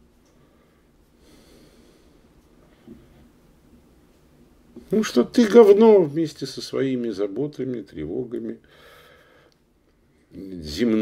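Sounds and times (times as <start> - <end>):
faint breath drawn in: 0.4 - 3.3, 8.7 - 9.6.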